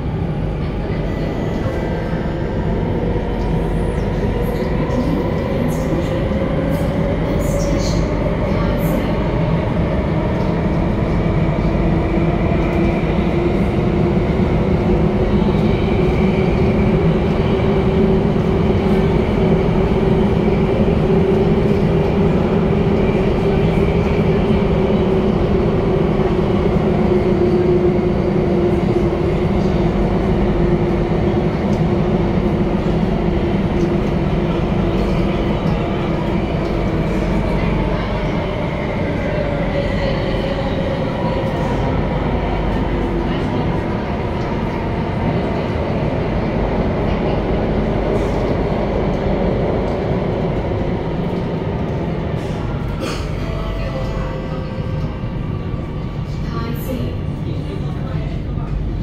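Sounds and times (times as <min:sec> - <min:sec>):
train wheel and track rumble: 0:00.0 - 0:59.0.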